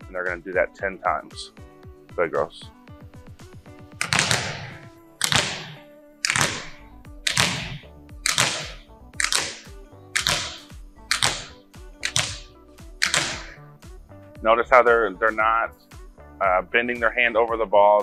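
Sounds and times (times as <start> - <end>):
soft background music: 0.0 - 18.0
volleyballs slapping hardwood floor: 4.0 - 13.6.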